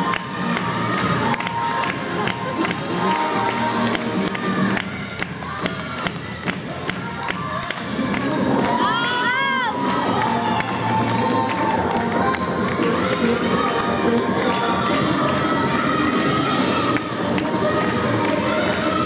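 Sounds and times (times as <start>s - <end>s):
music with steady beat: 0.0s - 8.8s
spectators cheering and shouting: 0.0s - 19.0s.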